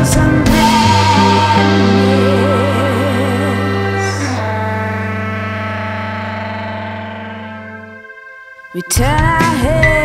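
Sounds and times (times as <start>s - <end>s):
held music chord: 0.0s - 8.7s
low bass note: 0.1s - 8.1s.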